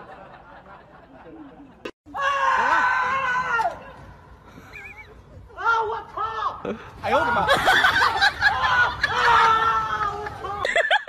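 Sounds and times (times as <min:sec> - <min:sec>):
person shrieking excitedly: 0:02.1 - 0:03.8, 0:08.4 - 0:10.7.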